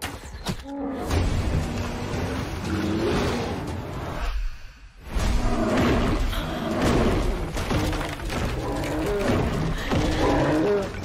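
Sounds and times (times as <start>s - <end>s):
film trailer score: 0.0s - 11.0s.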